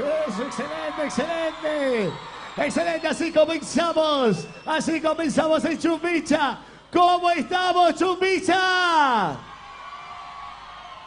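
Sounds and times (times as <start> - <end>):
man chanting and shouting: 0.0 - 9.4.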